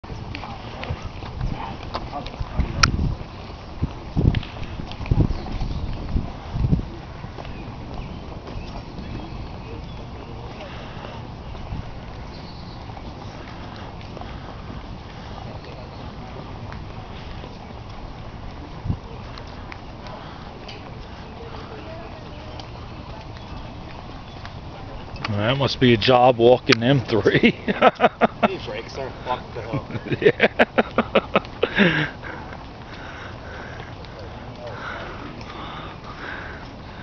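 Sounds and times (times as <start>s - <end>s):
wind rumble on microphone: 0.0s - 25.3s
horse hooves on paved road: 0.0s - 37.0s
faint clicks: 22.5s - 25.4s, 30.8s - 37.0s.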